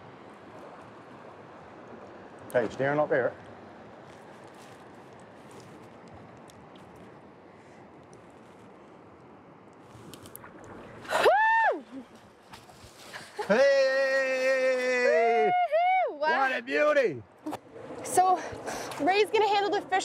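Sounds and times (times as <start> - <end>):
shallow river water: 0.0 - 20.0
high whoop: 11.1 - 12.1, 13.4 - 16.3
person shouting and cheering: 11.2 - 11.8, 13.5 - 16.4.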